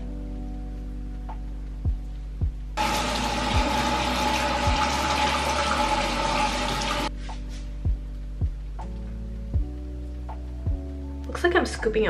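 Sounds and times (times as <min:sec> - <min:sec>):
soft background music with beat: 0:00.0 - 0:12.0
tap running into sink: 0:02.8 - 0:07.1.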